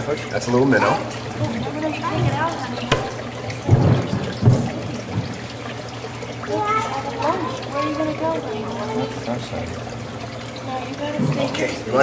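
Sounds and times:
water trickling into tank: 0.0 - 12.0.

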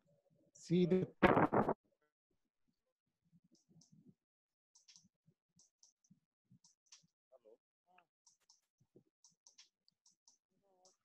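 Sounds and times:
chopped voice fragments: 0.9 - 1.8.

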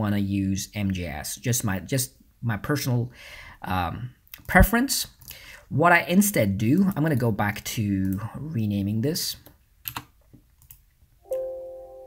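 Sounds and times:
faint keyboard clicks: 9.4 - 10.9
computer alert chime: 11.2 - 12.0.

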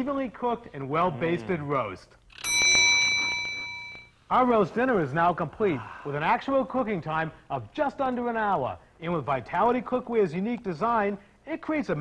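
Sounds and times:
bell ringing: 2.3 - 4.2.

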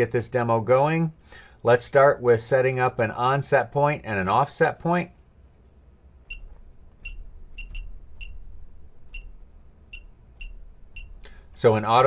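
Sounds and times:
short high-pitched key-press beeps: 6.3 - 8.5, 9.1 - 11.2.

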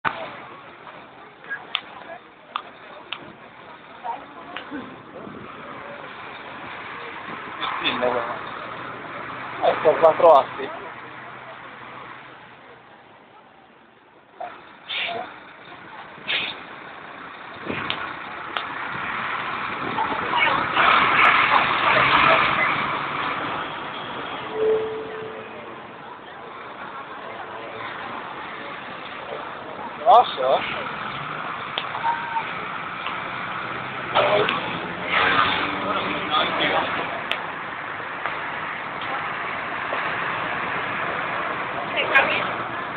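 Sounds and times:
traffic: 0.0 - 42.9
truck driving past: 14.5 - 42.9.

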